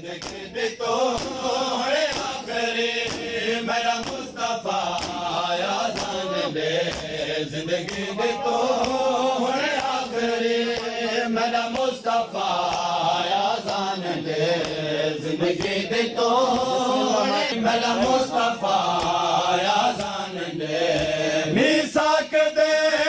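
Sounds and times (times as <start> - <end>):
men chanting: 0.0 - 23.0.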